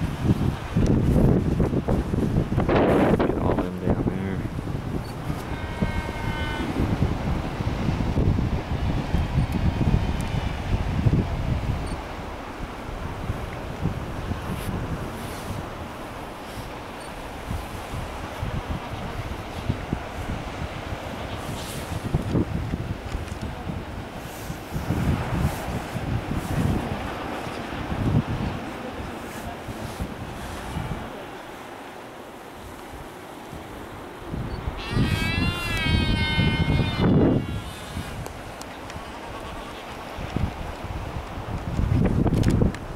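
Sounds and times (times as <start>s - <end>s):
surf washing: 0.0s - 42.9s
wind buffeting microphone: 0.0s - 42.9s
loud bleating call: 5.5s - 6.8s, 34.8s - 37.8s.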